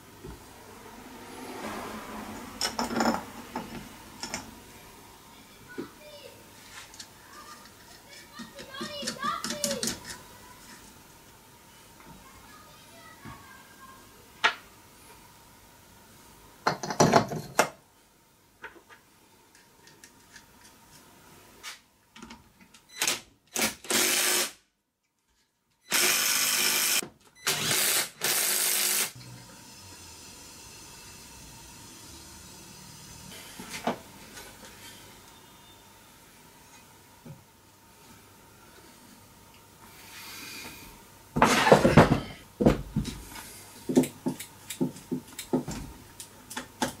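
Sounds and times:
child talking: 0:05.3 - 0:06.5, 0:07.2 - 0:10.8, 0:12.1 - 0:14.2.

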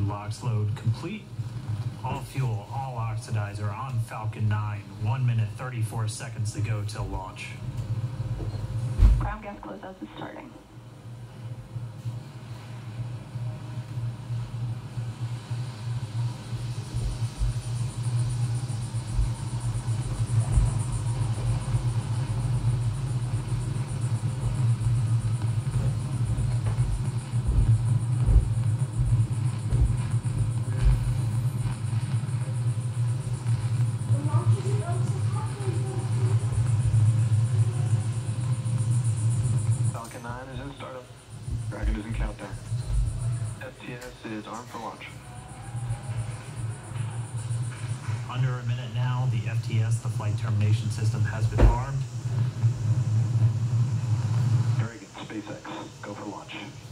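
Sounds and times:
low rumble with hiss: 0:00.0 - 0:56.9.

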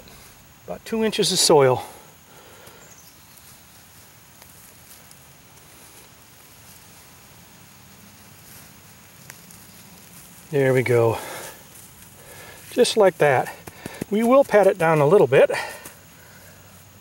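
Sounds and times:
sandy soil rustling and pattering: 0:00.0 - 0:17.0.

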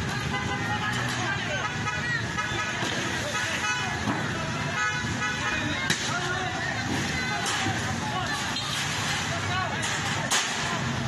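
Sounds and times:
traffic noise: 0:00.0 - 0:11.0
car horns blasting: 0:00.2 - 0:05.8.

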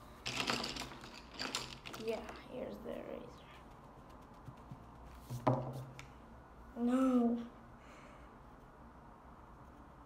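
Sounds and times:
pencil and eraser rubbing: 0:03.5 - 0:05.9.

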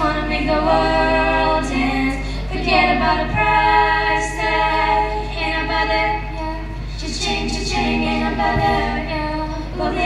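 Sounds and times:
women singing together: 0:00.0 - 0:10.0.

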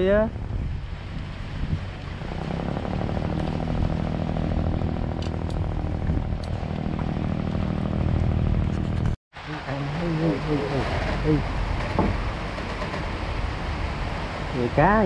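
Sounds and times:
small engine running: 0:02.2 - 0:09.1.

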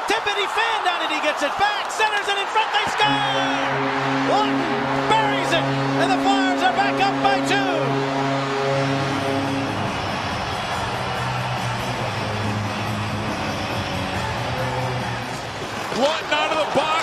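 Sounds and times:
crowd noise: 0:00.0 - 0:17.0
arena music over public address: 0:02.1 - 0:17.0.

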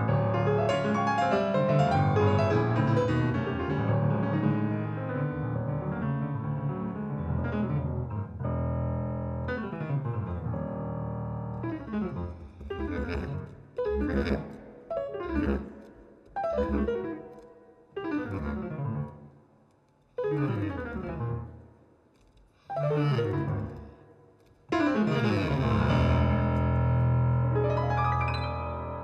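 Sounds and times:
grand piano chords: 0:00.0 - 0:19.5, 0:24.7 - 0:29.0.

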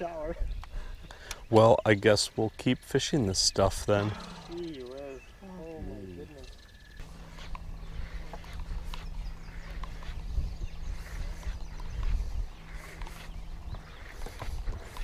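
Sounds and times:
wind rumbling on microphone: 0:00.0 - 0:01.2, 0:05.7 - 0:15.0
steady low hum: 0:00.8 - 0:15.0.

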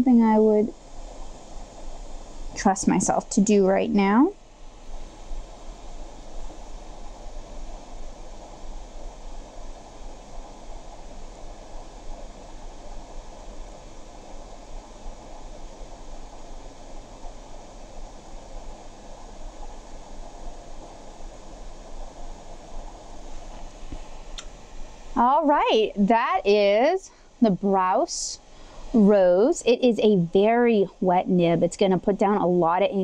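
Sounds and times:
low electrical hum: 0:00.0 - 0:33.0
steady rushing noise: 0:00.0 - 0:33.0.

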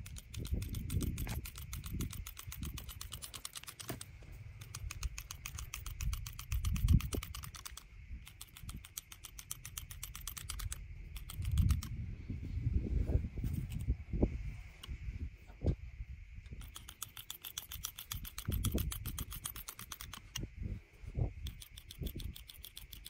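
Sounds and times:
hand clippers clicking: 0:00.0 - 0:11.9.

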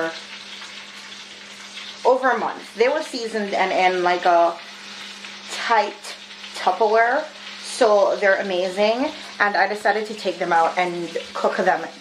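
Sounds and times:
chicken sizzling in oil: 0:00.0 - 0:12.0.

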